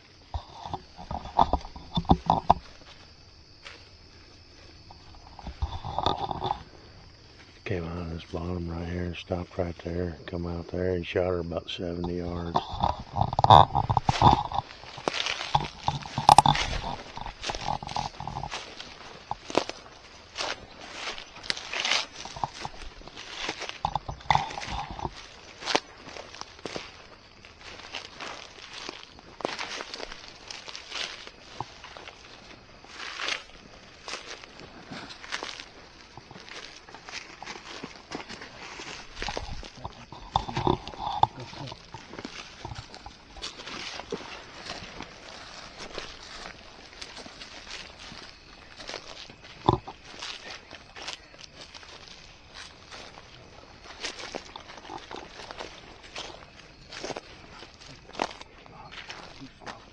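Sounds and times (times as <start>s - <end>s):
footsteps through dry weeds: 0.0s - 7.6s, 12.1s - 59.9s
rustling of vegetation: 0.0s - 59.9s.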